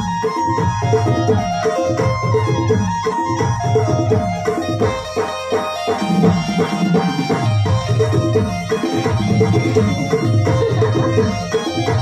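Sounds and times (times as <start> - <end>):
electronic keyboard melody: 0.0 - 12.0
tabla-like drum beat: 0.0 - 12.0.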